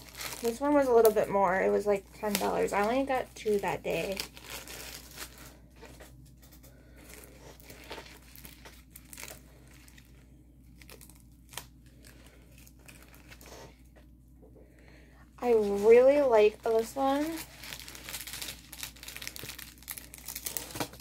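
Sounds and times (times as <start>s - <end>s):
plastic wrapping crinkling: 0.0s - 14.1s, 15.4s - 21.0s.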